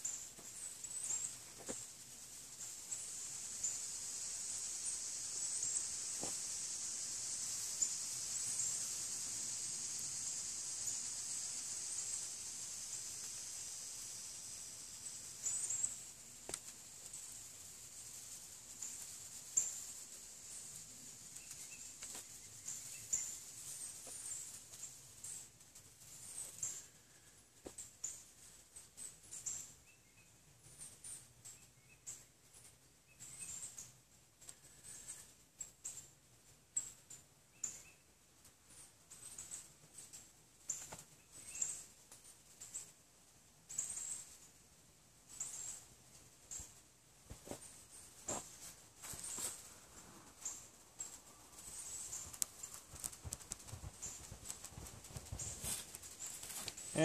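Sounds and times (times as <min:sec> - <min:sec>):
dry pine straw crackling: 0:00.0 - 0:28.7, 0:45.2 - 0:57.0
small birds chirping: 0:00.0 - 0:57.0.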